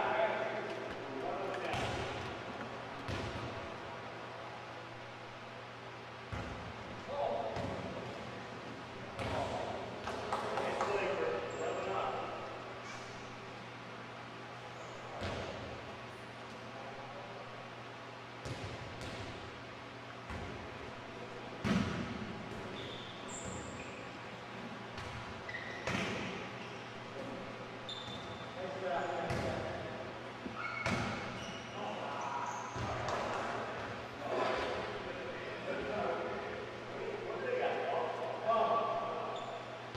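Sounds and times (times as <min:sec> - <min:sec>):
volleyball slaps echoing: 0:01.6 - 0:02.4, 0:03.0 - 0:03.7, 0:09.1 - 0:11.0, 0:21.6 - 0:22.7, 0:25.0 - 0:26.4, 0:30.8 - 0:31.4.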